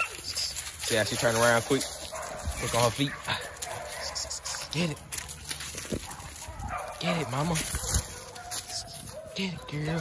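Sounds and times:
scuffling on the ground: 0.0s - 10.0s
puppy barking excitedly: 1.8s - 4.7s, 5.9s - 10.0s.

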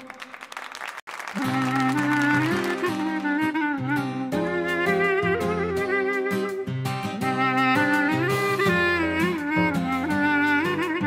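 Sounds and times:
folk band playing: 1.4s - 11.0s
light rhythmic beat: 1.4s - 11.0s
wavering lead melody: 1.4s - 11.0s.

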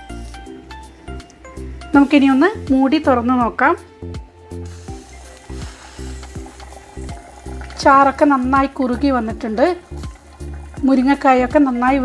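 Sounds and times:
background music: 0.0s - 12.0s
curry bubbling in a pot: 4.7s - 12.0s.

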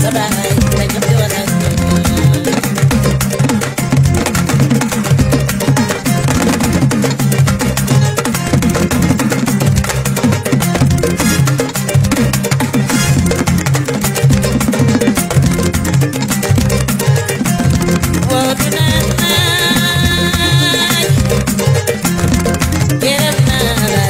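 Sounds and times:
bass line: 0.0s - 24.0s
driving drums: 0.0s - 24.0s
kora: 0.0s - 24.0s
quick busy percussion: 0.0s - 24.0s.

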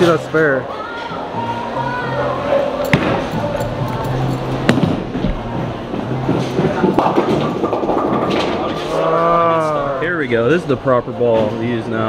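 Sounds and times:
bowling ball rolling: 2.7s - 9.9s.

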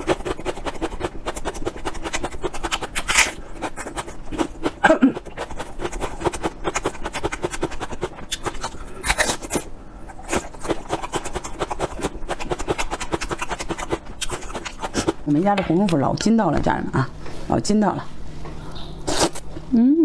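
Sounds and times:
crunching and chewing onion: 0.0s - 15.4s, 18.8s - 19.5s.

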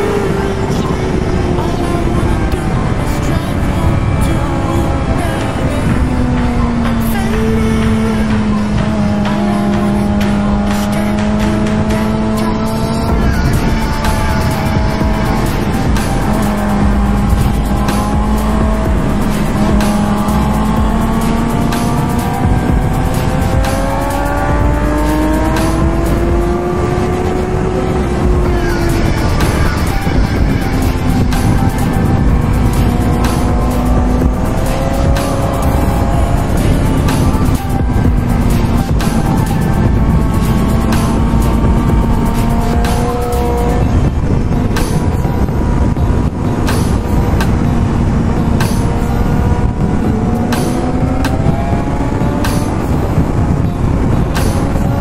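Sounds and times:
motorcycle engine on track: 0.0s - 55.0s
music: 0.0s - 55.0s
wind rush: 0.0s - 55.0s.

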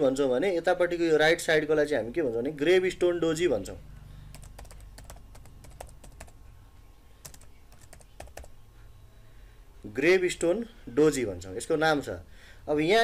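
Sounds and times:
faint low hum: 0.0s - 13.0s
keyboard typing: 4.3s - 6.4s, 7.2s - 8.6s.

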